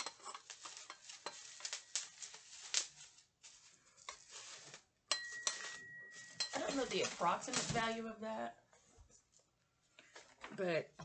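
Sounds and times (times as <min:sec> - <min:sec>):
plastic packaging crinkling: 0:00.0 - 0:08.2.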